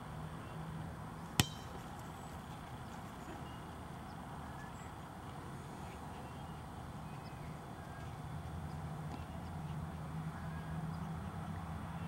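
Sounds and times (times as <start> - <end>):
low outdoor background: 0.0 - 12.0
soccer ball kicked: 1.4 - 2.0.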